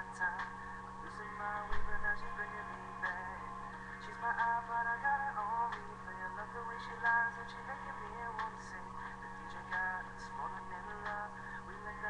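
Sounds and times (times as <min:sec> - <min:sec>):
person singing: 0:00.0 - 0:12.0
steady low hum: 0:00.0 - 0:12.0.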